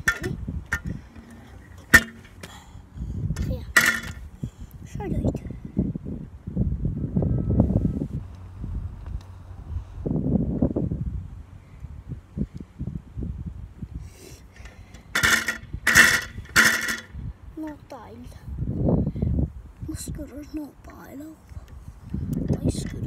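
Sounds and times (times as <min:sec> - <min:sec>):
scooter rattling and clinking: 0:00.0 - 0:02.4, 0:03.4 - 0:04.2, 0:14.6 - 0:17.2.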